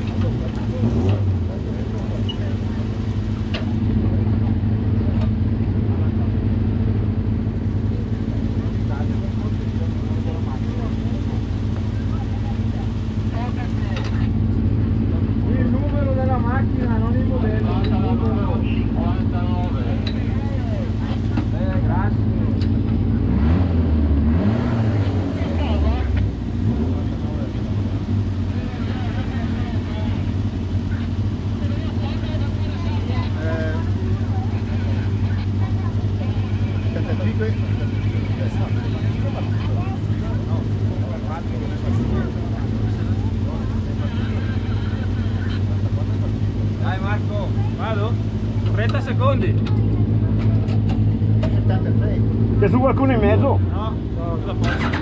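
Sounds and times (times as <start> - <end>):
motorcycle engine idling: 0.0 - 23.2, 25.0 - 55.0.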